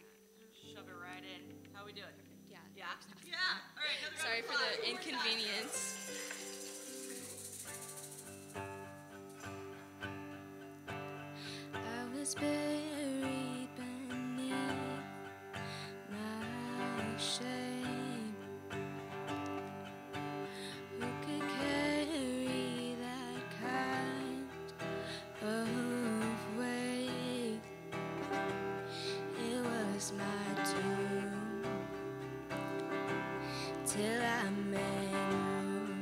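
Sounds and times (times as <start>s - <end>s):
acoustic guitar strumming: 3.8s - 36.0s
light percussion: 4.9s - 10.2s.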